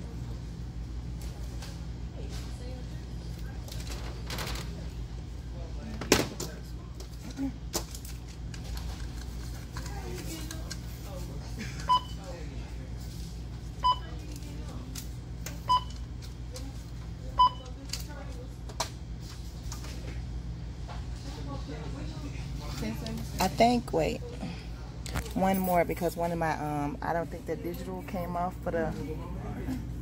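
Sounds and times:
steady low hum: 0.0 - 30.0
barcode scanner beeping: 15.6 - 16.1.

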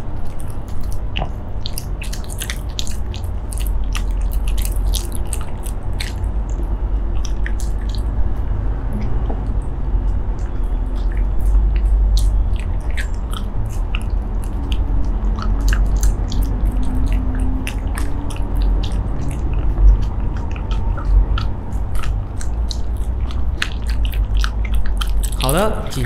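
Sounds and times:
dog chewing crunchy treat: 0.0 - 8.2, 9.4 - 26.0
low background rumble: 0.0 - 26.0.

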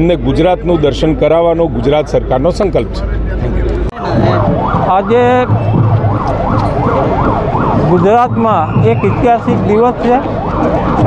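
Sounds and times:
siren in fast sweeps: 4.0 - 11.0.

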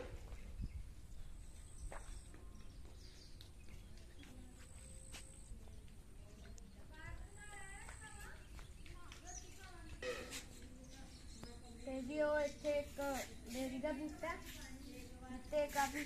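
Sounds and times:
wind rumbling on microphone: 0.0 - 4.3
faint distant voices: 0.0 - 16.0
faint high thin tone: 10.0 - 10.5.

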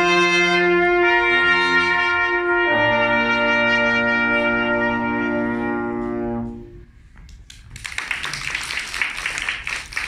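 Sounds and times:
audience applause: 7.5 - 10.0.

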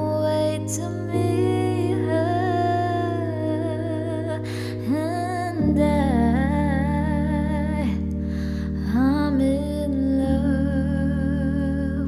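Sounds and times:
sustained backing chords: 0.0 - 12.0.

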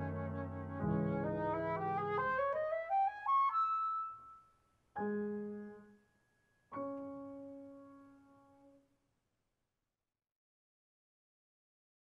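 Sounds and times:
low piano chord: 0.0 - 1.8
flute run of notes: 0.0 - 4.4.

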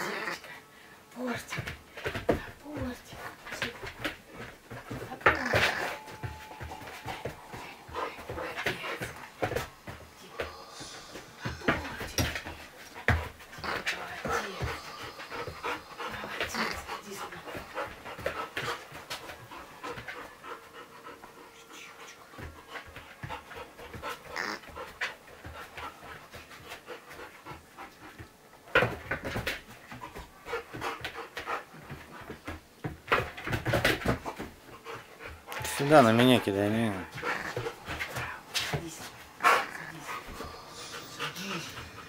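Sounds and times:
dog panting: 1.2 - 42.0.

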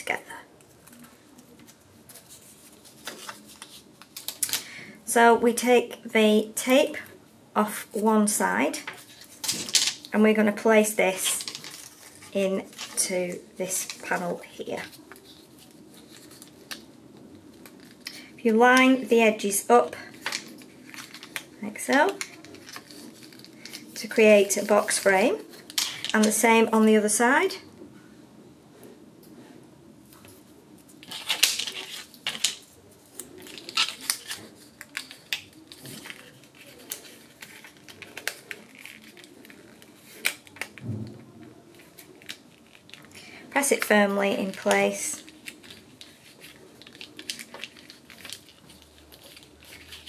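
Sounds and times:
card stock rustling and creaking: 0.5 - 4.8, 8.8 - 26.5, 30.1 - 50.0.

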